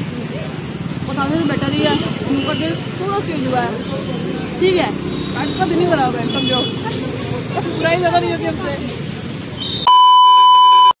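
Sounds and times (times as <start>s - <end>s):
low street background: 0.0s - 9.9s
electronic beep tone: 9.8s - 11.0s.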